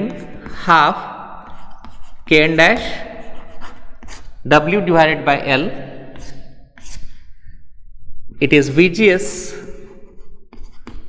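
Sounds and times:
man breathing: 6.2 - 7.9.

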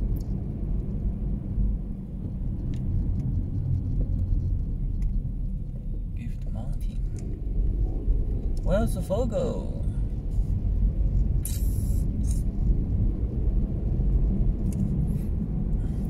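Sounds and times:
car road and engine rumble: 0.0 - 16.0.

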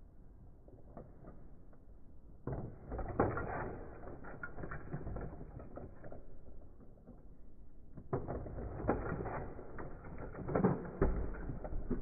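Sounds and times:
plastic toy figures clicking and rattling: 2.5 - 12.0.

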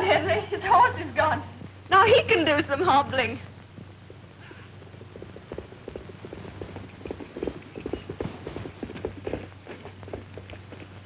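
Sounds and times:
old film soundtrack hum: 0.0 - 11.0
horse hooves clopping: 1.6 - 11.0.

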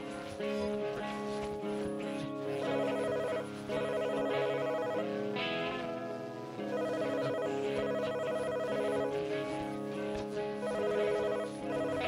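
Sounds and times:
wavering rock band chords: 0.0 - 12.0.

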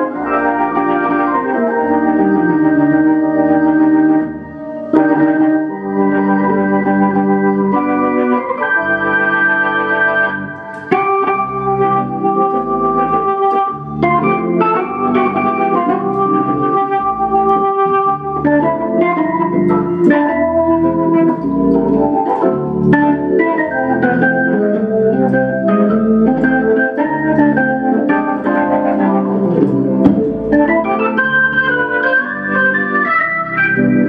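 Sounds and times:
organ playing chords: 0.0 - 34.0.

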